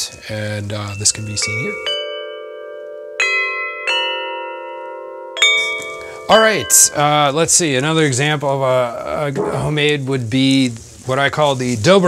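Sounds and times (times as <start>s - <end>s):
metal tubular bells ringing: 0.0s - 8.4s.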